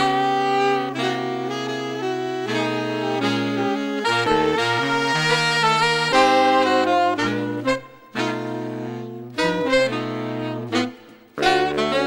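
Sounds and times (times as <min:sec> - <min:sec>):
jazz horn ensemble: 0:00.0 - 0:12.0.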